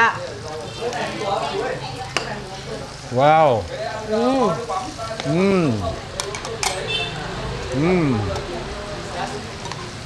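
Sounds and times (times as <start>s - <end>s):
faint voices: 0.0s - 10.0s
fish sizzling in a pan: 0.0s - 10.0s.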